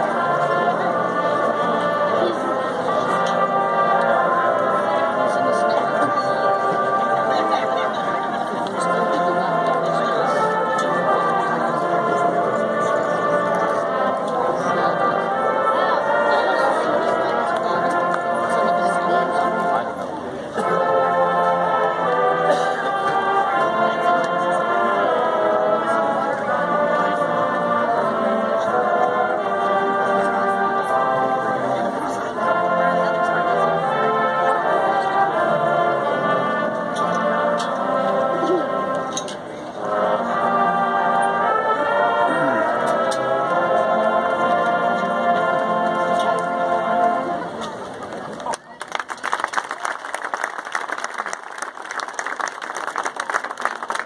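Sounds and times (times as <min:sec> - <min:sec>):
voices singing along: 0:00.0 - 0:47.6
marching band playing slow chords: 0:00.0 - 0:48.4.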